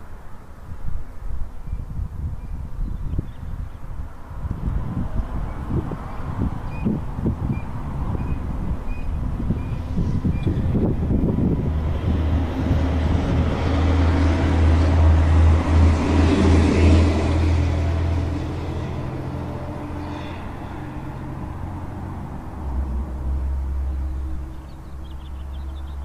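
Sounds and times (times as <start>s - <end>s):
wind buffeting microphone: 0.4s - 26.0s
vehicle engine hum: 3.5s - 26.0s.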